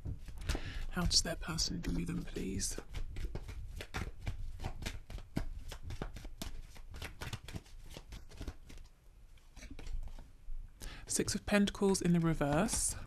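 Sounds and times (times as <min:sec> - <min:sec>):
cards being shuffled: 0:00.0 - 0:10.3, 0:11.0 - 0:13.0.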